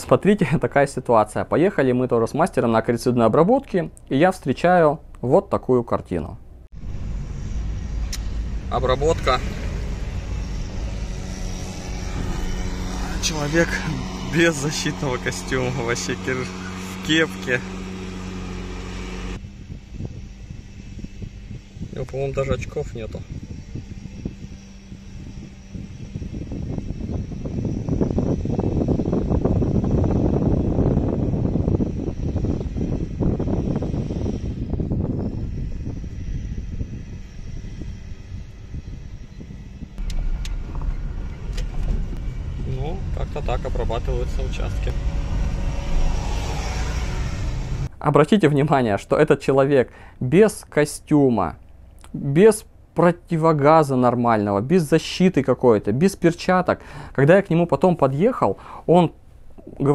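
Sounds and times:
low uneven rumble: 5.9 - 50.4
small engine running: 6.8 - 47.9.

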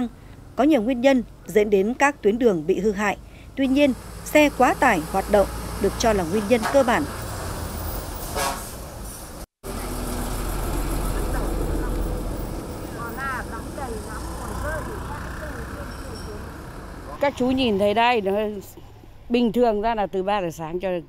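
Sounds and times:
dump trucks driving past: 0.0 - 20.6.

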